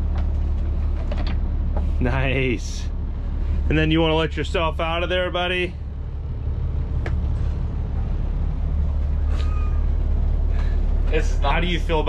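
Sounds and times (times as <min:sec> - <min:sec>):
engine and generator droning: 0:00.0 - 0:12.0
brief thin squeak: 0:09.2 - 0:10.0.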